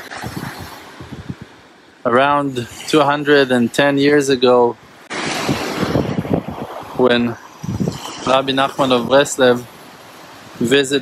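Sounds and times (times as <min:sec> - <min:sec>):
small waves washing on beach: 0:00.0 - 0:11.0
wind buffeting microphone: 0:00.0 - 0:11.0.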